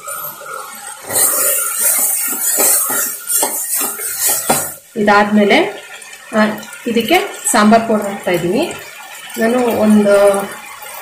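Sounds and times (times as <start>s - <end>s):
metal spoon scraping a pot: 1.0s - 4.8s.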